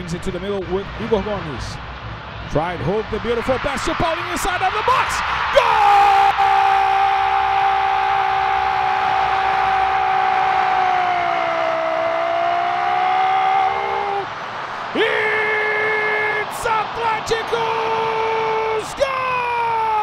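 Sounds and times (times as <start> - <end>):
stadium crowd cheering: 2.2 - 20.0
commentator shouting: 4.6 - 7.2, 15.0 - 20.0.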